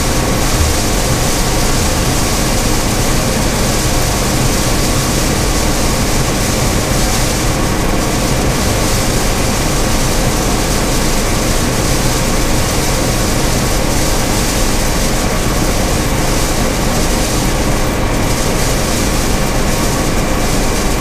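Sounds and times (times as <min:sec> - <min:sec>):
combine harvester running: 0:00.0 - 0:21.0.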